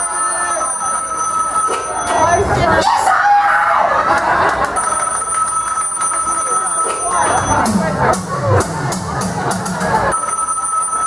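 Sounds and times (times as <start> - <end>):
telephone ringing: 0.0 - 2.6, 4.8 - 7.7, 10.1 - 11.0
voices: 0.0 - 11.0.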